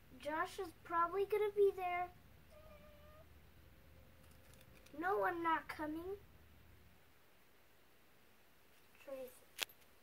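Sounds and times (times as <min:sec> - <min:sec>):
girl's high vocal tone: 0:02.5 - 0:03.3.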